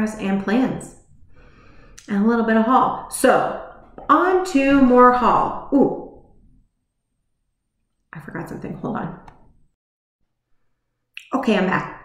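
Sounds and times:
woman's voice: 0.0 - 1.0, 2.0 - 6.2, 8.2 - 9.3, 11.2 - 12.0.

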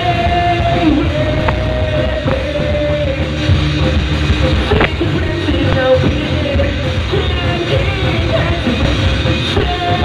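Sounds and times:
rock band playing live: 0.0 - 10.0.

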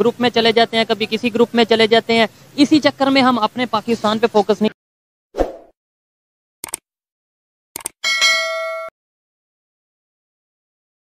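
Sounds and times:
mouse double clicks: 6.6 - 6.8
notification bell ding: 8.0 - 8.9.

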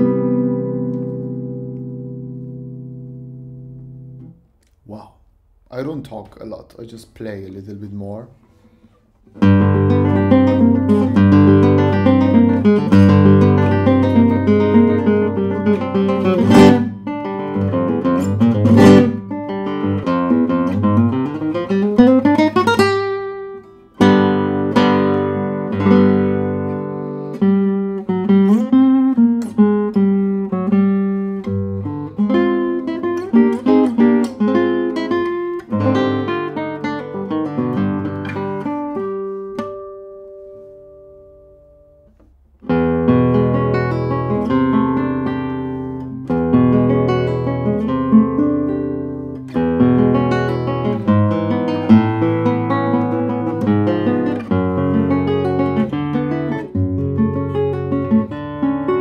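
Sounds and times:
fingerstyle classical guitar: 0.0 - 4.8, 8.4 - 59.0.

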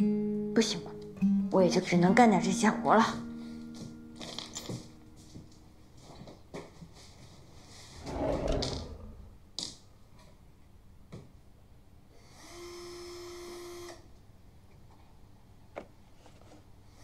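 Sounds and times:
rustling scrape on desk: 7.0 - 9.3.

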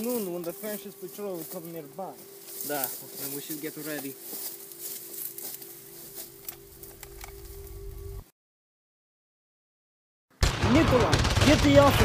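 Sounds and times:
faint outdoor hiss: 0.0 - 8.2
low music drone: 0.0 - 8.3.

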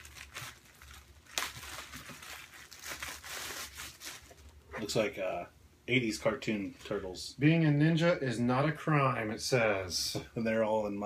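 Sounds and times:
plastic bag crinkling: 0.0 - 4.6.

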